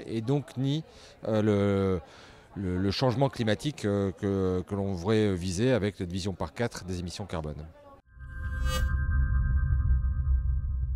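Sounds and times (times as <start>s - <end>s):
bright shimmer: 8.1s - 10.4s
deep low drone: 8.3s - 10.9s.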